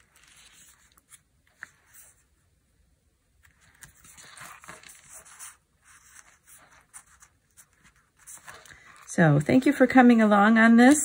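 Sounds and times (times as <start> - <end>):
paper pages rustling: 0.0 - 2.5, 3.4 - 9.7.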